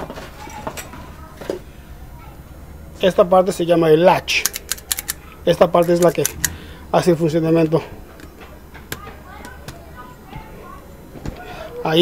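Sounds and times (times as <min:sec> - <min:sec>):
light metallic clicks: 0:04.4 - 0:06.6.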